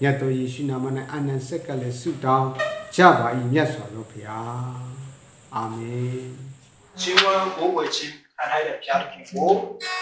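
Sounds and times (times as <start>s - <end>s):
young man speaking: 0.0s - 10.0s.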